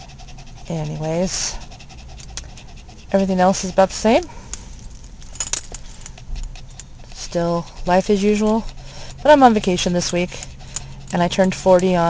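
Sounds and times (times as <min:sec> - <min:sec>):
dog collar tags jingling: 0:04.4 - 0:06.2.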